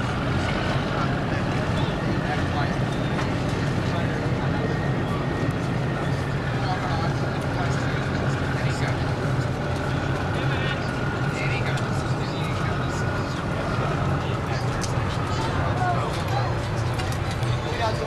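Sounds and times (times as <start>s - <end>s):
boat engine droning: 0.0s - 18.0s.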